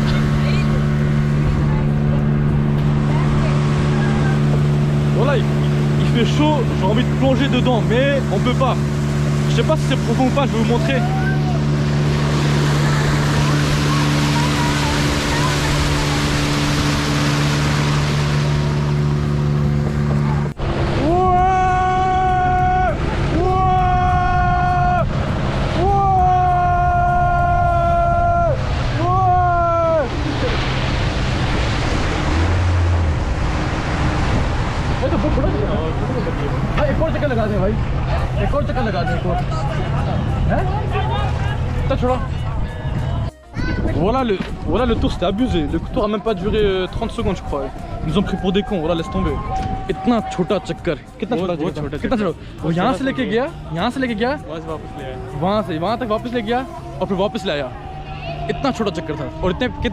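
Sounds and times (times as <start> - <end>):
outboard motor running: 0.0 - 59.9
rushing water: 0.0 - 59.9
wind noise: 22.3 - 50.2
indistinct voices: 33.2 - 59.9.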